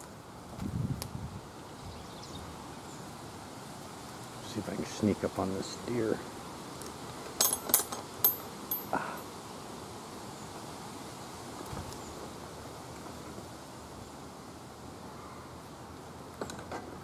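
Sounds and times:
outdoor background hiss: 0.0 - 17.0.

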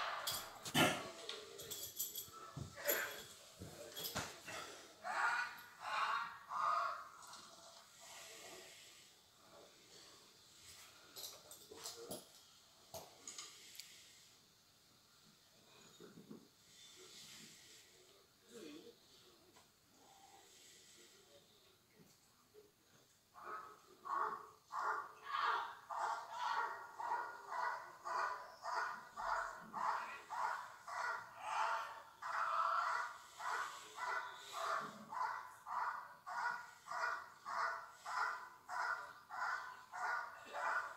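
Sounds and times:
dog barking through tv speaker: 23.4 - 40.9.

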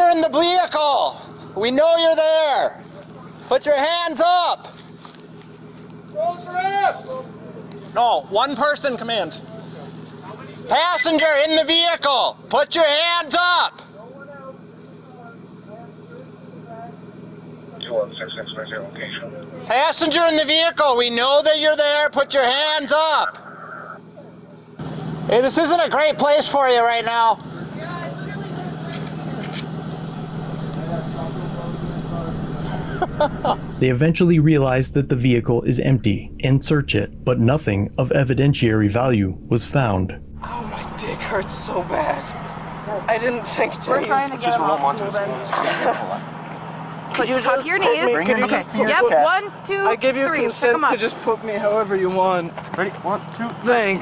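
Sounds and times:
police officer shouting: 0.0 - 2.8, 3.5 - 4.7, 6.1 - 7.3, 10.4 - 14.2, 18.4 - 23.6, 40.4 - 46.2, 47.1 - 51.4
vehicles idling hum: 0.0 - 54.0.

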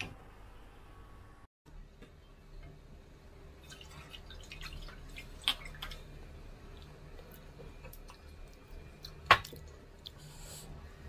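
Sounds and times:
liquid drips and splashes: 3.6 - 9.8.

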